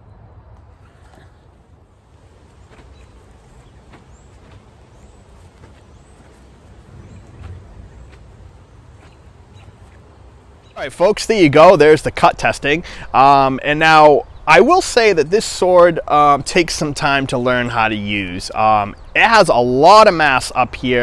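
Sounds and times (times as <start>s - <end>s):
low steady rumble: 1.5s - 15.3s.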